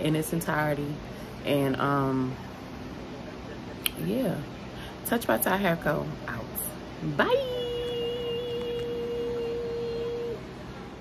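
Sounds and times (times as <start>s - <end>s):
woman singing long high note: 7.1s - 10.6s.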